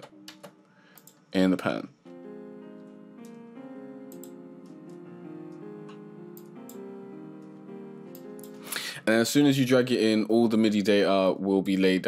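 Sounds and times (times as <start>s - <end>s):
piano chords: 1.5s - 11.6s.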